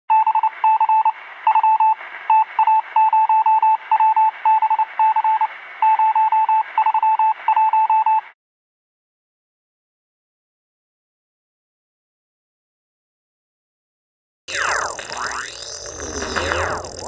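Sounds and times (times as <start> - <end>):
rapid electronic beeps: 14.5 - 17.0.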